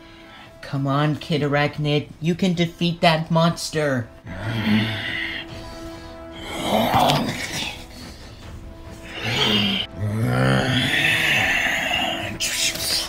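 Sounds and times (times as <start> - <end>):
background music: 0.0 - 13.0
low growling roar: 6.3 - 7.8, 9.0 - 12.4.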